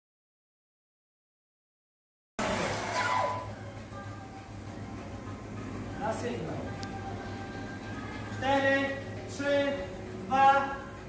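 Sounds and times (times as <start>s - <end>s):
steady hum: 2.4s - 11.0s.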